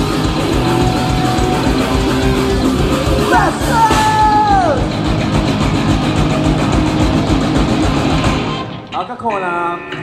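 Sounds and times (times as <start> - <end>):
rapid drumming: 0.0 - 8.7
distorted electric guitars: 0.0 - 10.0.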